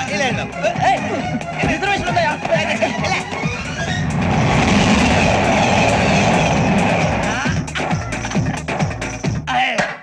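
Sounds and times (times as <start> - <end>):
passenger train rumbling past: 3.7 - 7.4.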